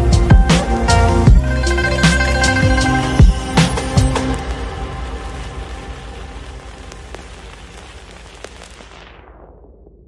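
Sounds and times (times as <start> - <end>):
rain-like hiss: 3.9 - 9.2
crackle clicks: 4.2 - 9.6.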